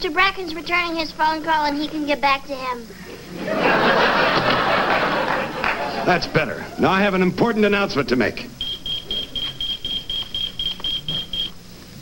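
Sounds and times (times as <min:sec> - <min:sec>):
pager beeping: 0:08.6 - 0:11.6.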